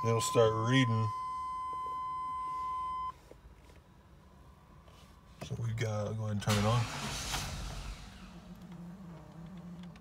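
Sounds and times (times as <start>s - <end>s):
high-pitched warning beep: 0.0s - 3.1s.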